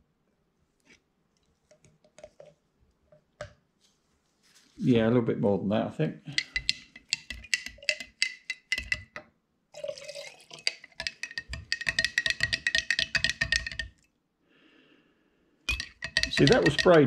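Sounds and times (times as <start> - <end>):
clinks on glass jars: 6.3 - 9.2, 9.8 - 14.0, 15.7 - 17.0.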